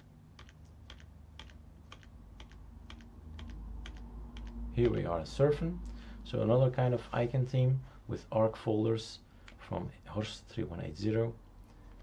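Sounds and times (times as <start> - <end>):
keyboard key clicks: 0.0 - 5.0
faint low hum: 0.0 - 12.0.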